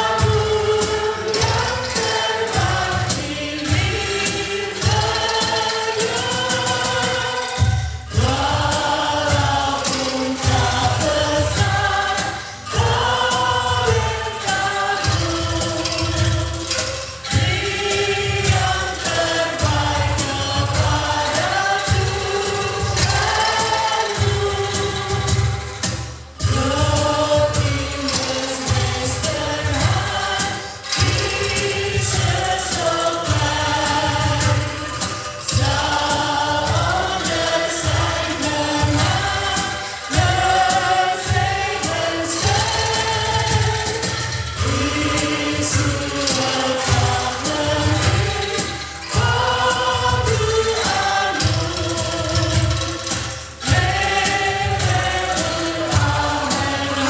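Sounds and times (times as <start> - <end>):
choir singing a hymn: 0.0 - 57.0
women singing into microphones: 0.0 - 57.0.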